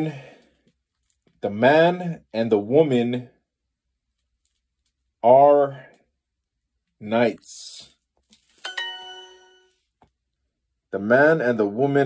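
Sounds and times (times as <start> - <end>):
bright app chime: 8.6 - 9.8.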